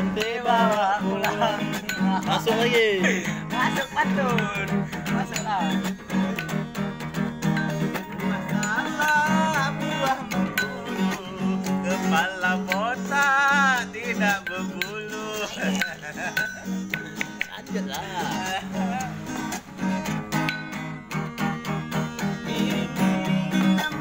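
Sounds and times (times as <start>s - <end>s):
person singing long notes: 0.0s - 6.3s, 8.1s - 16.8s
acoustic guitar strumming: 0.0s - 24.0s.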